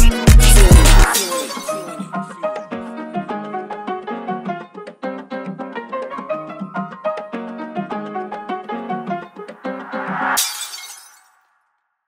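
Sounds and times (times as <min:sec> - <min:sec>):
instrumental hip-hop beat: 0:00.0 - 0:10.4
glass shattering: 0:01.1 - 0:02.0, 0:10.4 - 0:11.4.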